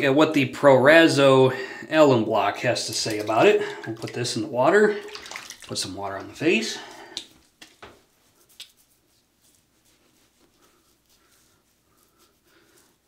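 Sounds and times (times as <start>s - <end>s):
water splashing on face: 2.7s - 6.5s.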